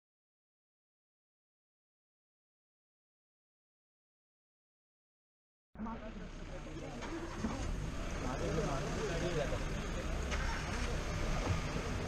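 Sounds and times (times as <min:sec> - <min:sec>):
jeep engine idling: 0:05.8 - 0:12.0
people talking quietly: 0:05.8 - 0:12.0.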